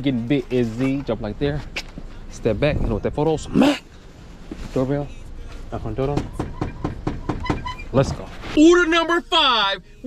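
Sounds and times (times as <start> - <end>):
rapid sharp knocking: 6.1 - 7.7.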